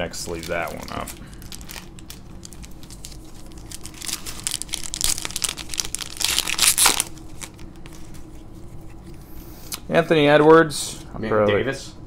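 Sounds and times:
foil card pack crinkling: 0:00.1 - 0:08.1.

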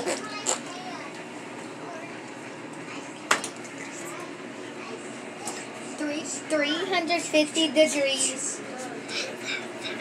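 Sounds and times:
faint talk: 0:00.0 - 0:09.6.

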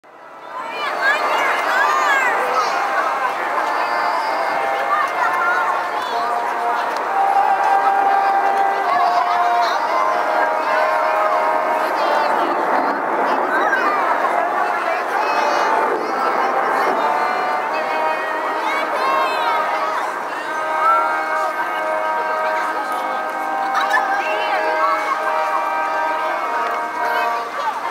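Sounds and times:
crowd chatter: 0:00.0 - 0:27.9
children's voices: 0:00.1 - 0:27.9
brass quartet playing chords: 0:00.3 - 0:27.9.

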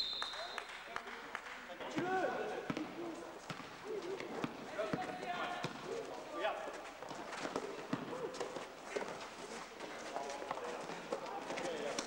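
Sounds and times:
basketball dribbling thuds: 0:07.0 - 0:09.2.

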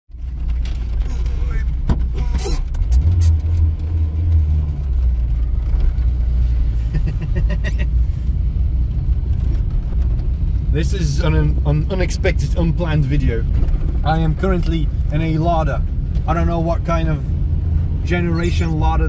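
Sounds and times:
car engine and road rumble: 0:00.1 - 0:19.0.

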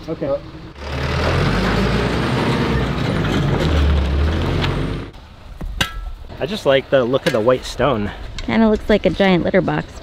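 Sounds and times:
truck diesel engine running: 0:00.4 - 0:05.1.

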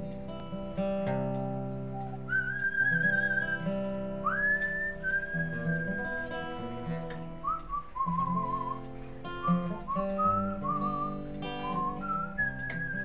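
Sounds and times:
acoustic guitar chords: 0:00.0 - 0:13.0
man whistling a melody: 0:01.6 - 0:13.0.

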